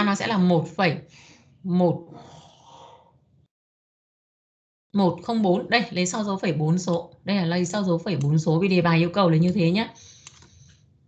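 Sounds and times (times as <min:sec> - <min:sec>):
faint breath: 0:01.1 - 0:03.2, 0:09.9 - 0:11.0.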